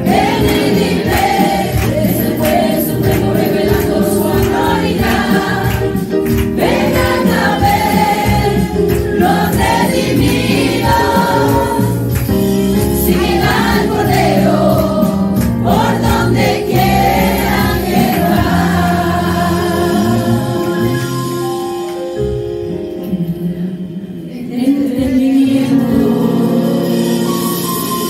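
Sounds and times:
women singing a hymn: 0.0s - 12.2s, 12.9s - 21.2s, 23.2s - 27.2s.

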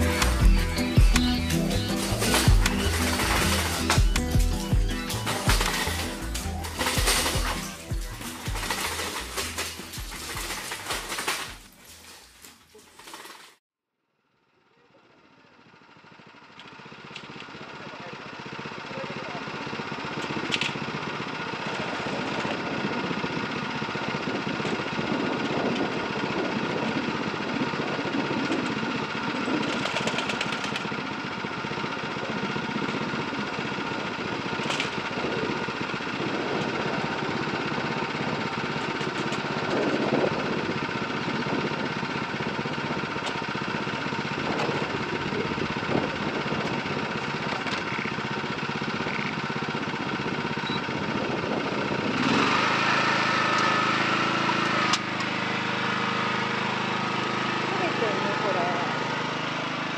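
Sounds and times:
small engine idling: 0.0s - 13.6s, 14.2s - 59.9s.

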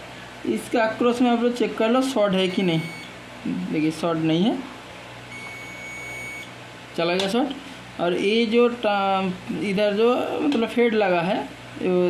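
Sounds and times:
multimeter continuity beep: 2.4s - 3.1s, 5.3s - 6.5s.

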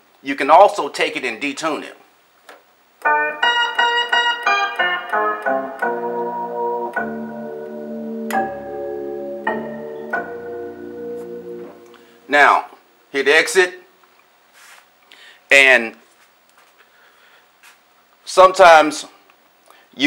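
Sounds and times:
sustained synthesizer chords: 4.8s - 13.0s
synthesizer note run: 5.8s - 13.0s.

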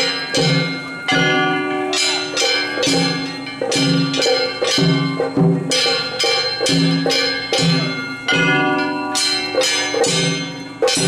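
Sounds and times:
drum beats: 0.0s - 11.0s.

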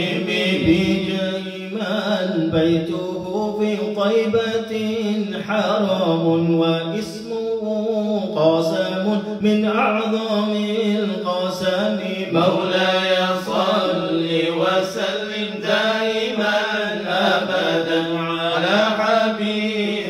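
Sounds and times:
men chanting melodically: 0.0s - 20.0s.

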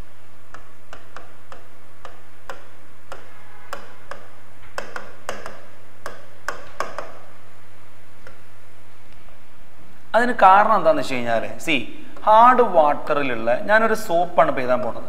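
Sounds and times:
low electrical hum: 0.0s - 15.0s
marker pen tapping on board: 0.5s - 7.4s.

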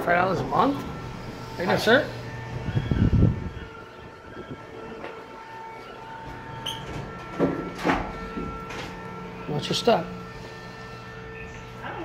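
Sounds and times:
ventilation machinery hum: 0.0s - 12.0s.

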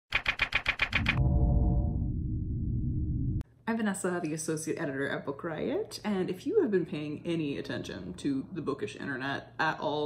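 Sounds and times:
sharp clacks: 0.1s - 1.2s.

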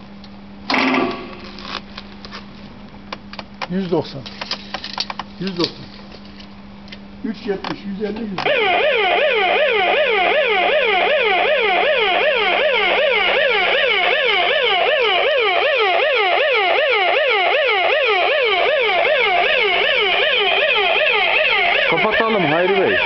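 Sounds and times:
warbling electronic warning siren: 8.4s - 23.0s.

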